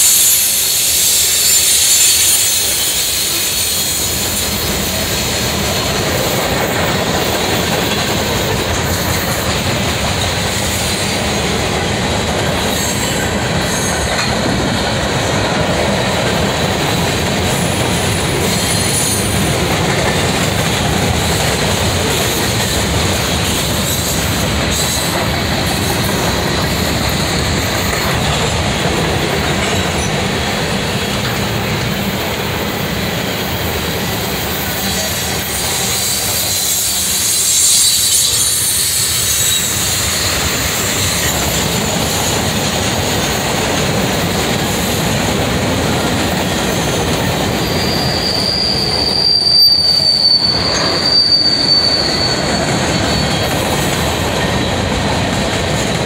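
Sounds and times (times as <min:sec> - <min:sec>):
faint high wheel squeal: 0:00.0 - 0:05.9, 0:34.2 - 0:42.5, 0:46.3 - 0:54.8
train wheels rumbling on rails: 0:00.0 - 0:56.0.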